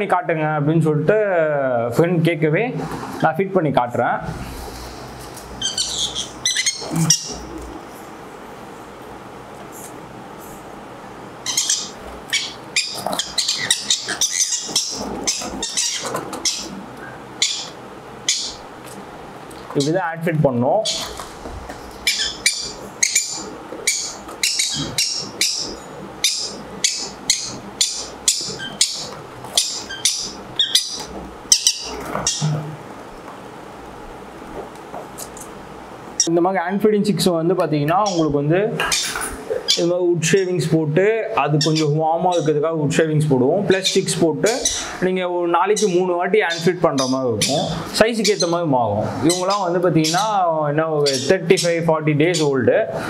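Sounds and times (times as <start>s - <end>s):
parrot chicks squeaky begging calls: 5.6s - 7.7s, 11.4s - 18.7s, 20.8s - 32.8s, 37.9s - 40.5s, 41.6s - 42.6s, 43.8s - 45.0s, 45.6s - 48.6s, 49.2s - 52.6s.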